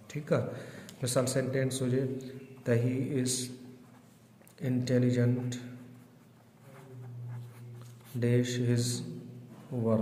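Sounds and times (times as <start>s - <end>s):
pen scratching on paper: 3.8s - 4.4s, 5.2s - 8.3s.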